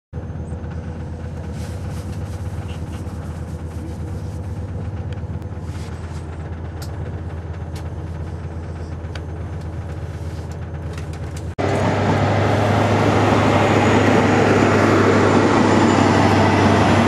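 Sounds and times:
train rumbling inside carriage: 0.2 - 17.0.

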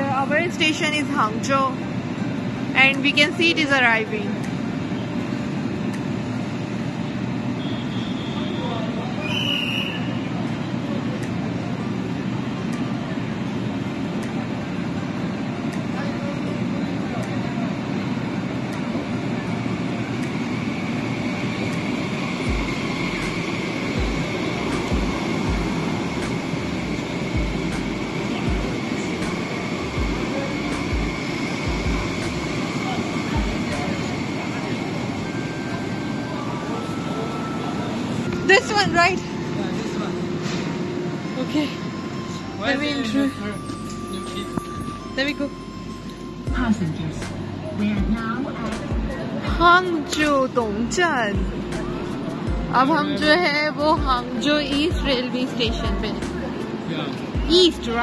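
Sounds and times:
electric train rolling past: 0.0 - 58.0
train high whine: 0.0 - 58.0.

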